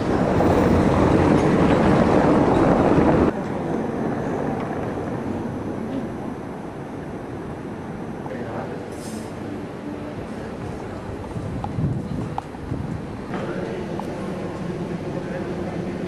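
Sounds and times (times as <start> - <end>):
loud rushing noise: 0.0 - 16.0
street background noise: 0.0 - 16.0.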